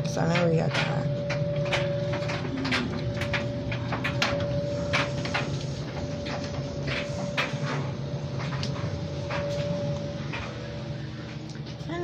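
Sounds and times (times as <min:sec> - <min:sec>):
steady hum with mid-pitched tone: 0:00.0 - 0:12.0.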